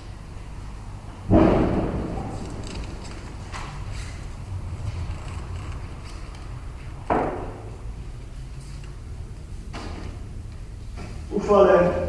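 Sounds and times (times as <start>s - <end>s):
dull thump near microphone: 1.3s - 2.4s.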